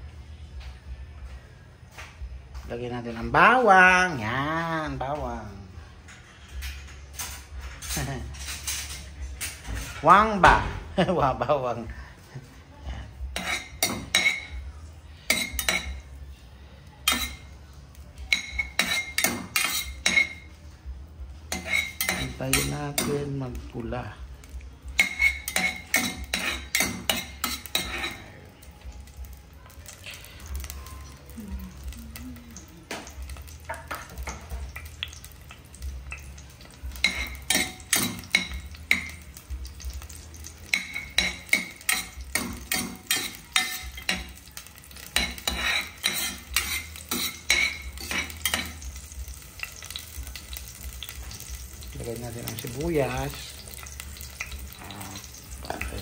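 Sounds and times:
tongs tapping and scraping pot: 0:18.3 - 0:20.4, 0:21.5 - 0:23.5, 0:24.5 - 0:28.3, 0:32.6 - 0:56.0
garlic sizzling in oil: 0:29.8 - 0:56.0.

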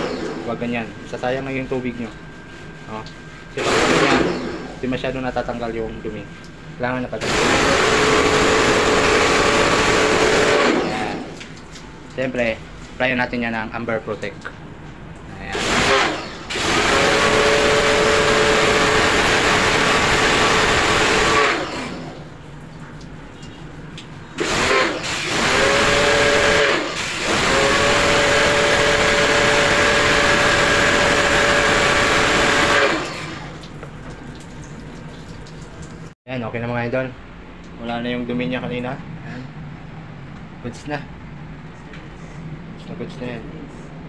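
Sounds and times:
pressure washer pump humming: 0:00.0 - 0:36.2.

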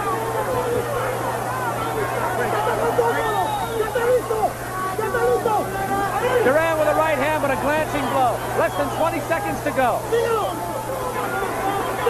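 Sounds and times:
crowd shouting: 0:00.0 - 0:12.0
low broadcast hum: 0:00.0 - 0:12.0.

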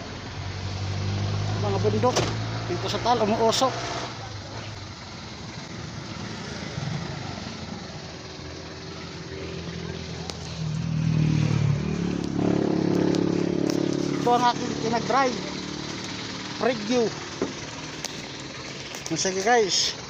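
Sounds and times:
vehicle engine running: 0:00.0 - 0:20.0.

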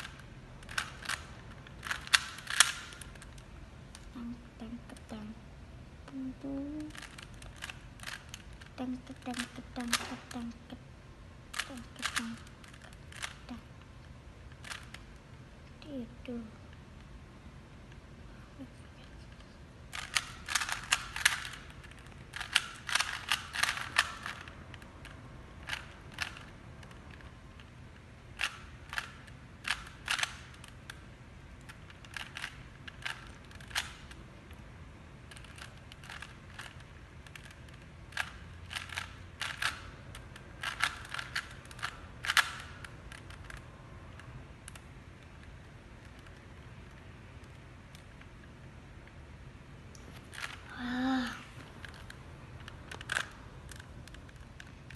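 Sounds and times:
puzzle cube clicking and rattling: 0:00.0 - 0:05.3, 0:06.1 - 0:10.8, 0:11.5 - 0:15.4, 0:19.0 - 0:34.6, 0:35.2 - 0:48.6, 0:49.9 - 0:54.9.

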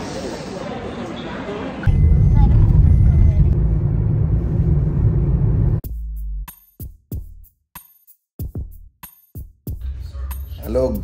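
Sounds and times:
car road and engine rumble: 0:01.9 - 0:05.8.

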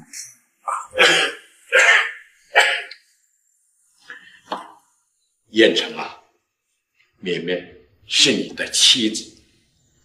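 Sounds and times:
elderly man coughing: 0:01.0 - 0:02.9.

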